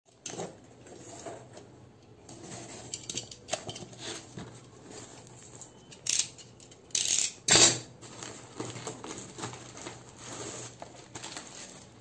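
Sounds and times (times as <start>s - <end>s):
knife slitting packing tape: 6.0s - 7.9s.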